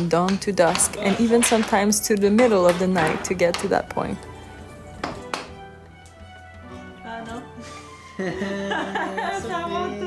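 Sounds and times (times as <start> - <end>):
background music: 0.0 - 10.0
hammer taps on wood: 5.0 - 5.6.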